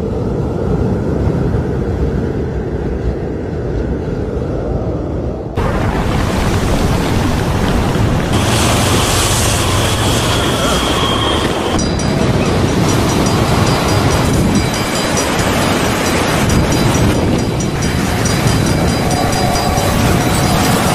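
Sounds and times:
wind blowing against microphone: 0.0s - 20.9s.

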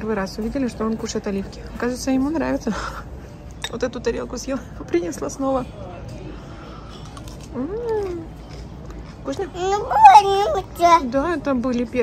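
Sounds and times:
low background hum: 0.0s - 12.0s
toddler vocalizing: 9.6s - 11.0s.

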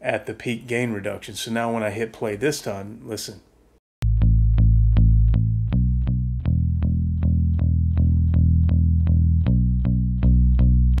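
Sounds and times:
plucked electric bass guitar: 4.0s - 11.0s.

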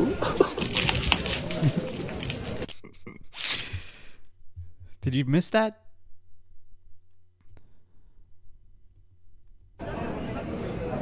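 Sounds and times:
man gasping: 3.4s - 5.0s
crowd chatter in a hall: 9.8s - 11.0s.

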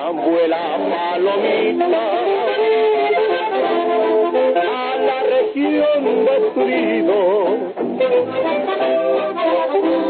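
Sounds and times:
accordion melody: 0.0s - 10.0s.

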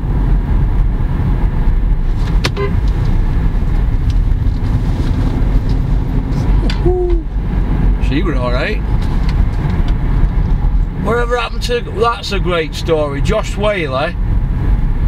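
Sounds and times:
car cabin road rumble: 0.0s - 15.0s
short low tone: 2.5s - 2.9s, 6.5s - 7.4s.

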